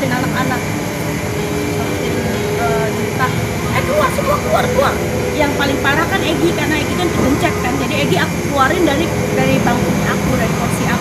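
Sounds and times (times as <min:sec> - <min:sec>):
woman talking: 0:00.0 - 0:00.9, 0:01.7 - 0:11.0
low engine rumble: 0:00.0 - 0:11.0.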